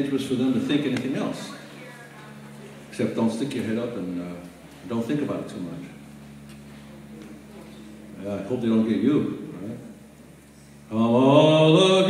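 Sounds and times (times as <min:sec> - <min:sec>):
man singing long note: 0:10.9 - 0:12.0.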